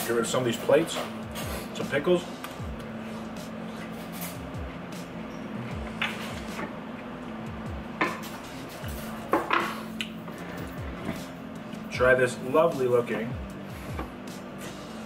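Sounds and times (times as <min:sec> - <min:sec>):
background music: 0:00.0 - 0:15.0
dishes clattering on wooden table: 0:09.3 - 0:09.9.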